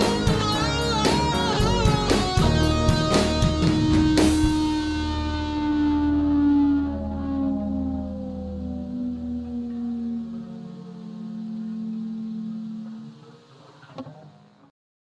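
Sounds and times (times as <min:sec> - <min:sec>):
held chord sinking in pitch: 0:00.0 - 0:13.9.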